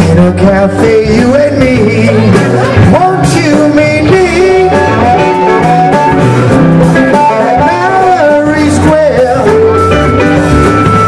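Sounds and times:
band playing: 0:00.0 - 0:11.0
lead guitar melody: 0:00.0 - 0:11.0.

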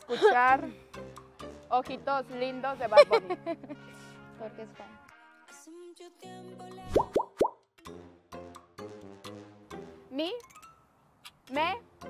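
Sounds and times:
light background music: 0:00.0 - 0:12.0.

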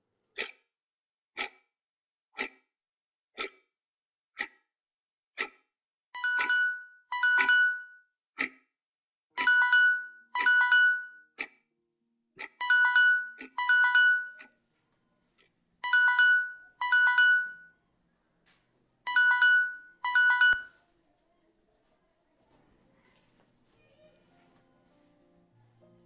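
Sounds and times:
sharp ticks: 0:00.4 - 0:00.6, 0:01.4 - 0:01.7, 0:03.4 - 0:03.7, 0:08.4 - 0:08.6, 0:12.4 - 0:12.6
phone alarm two-tone beeps: 0:06.2 - 0:08.1, 0:09.4 - 0:11.3, 0:12.6 - 0:14.4, 0:15.8 - 0:17.8, 0:19.1 - 0:20.7.

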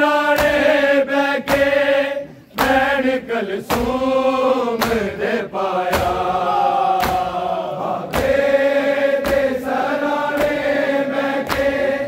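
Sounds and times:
men chanting a lament: 0:00.0 - 0:12.0
hands slapping bare chests: 0:00.2 - 0:00.8, 0:01.4 - 0:01.9, 0:02.5 - 0:03.0, 0:03.6 - 0:12.0.

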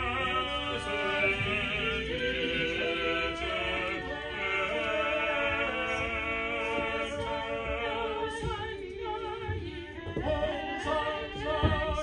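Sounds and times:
small choir chanting: 0:00.0 - 0:12.0.

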